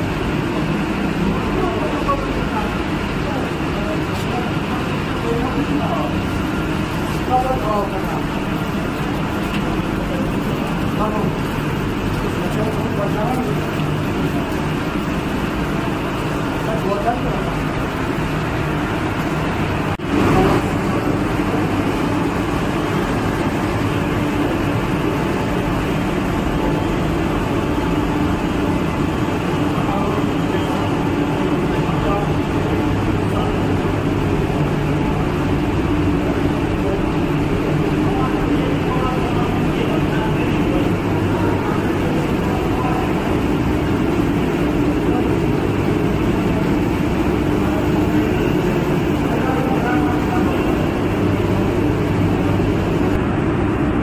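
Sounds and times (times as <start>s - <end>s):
machinery drone with low hum: 0.0s - 54.0s.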